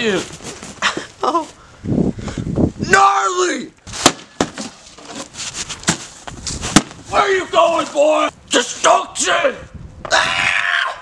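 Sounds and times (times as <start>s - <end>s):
bat striking cardboard boxes: 3.9s - 4.8s, 5.8s - 6.1s, 6.7s - 7.0s.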